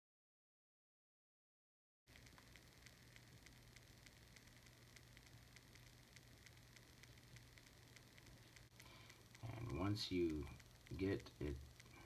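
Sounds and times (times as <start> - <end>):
faint ticking: 2.1 - 12.0
low steady hum: 2.1 - 12.0.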